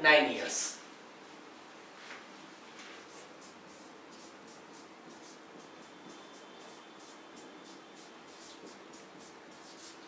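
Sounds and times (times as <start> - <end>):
marker writing on a whiteboard: 2.9 - 10.0.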